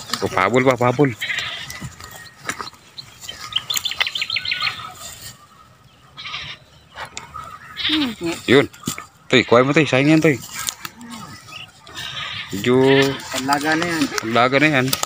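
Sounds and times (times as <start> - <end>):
goats bleating: 0.9 - 2.1, 6.1 - 6.7, 7.7 - 8.6, 10.8 - 14.5.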